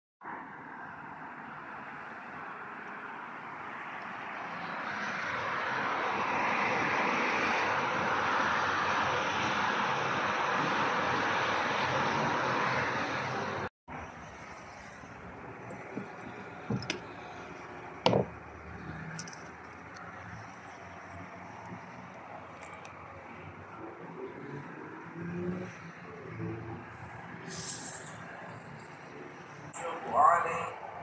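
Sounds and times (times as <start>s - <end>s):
highway traffic rushing: 0.2s - 31.0s.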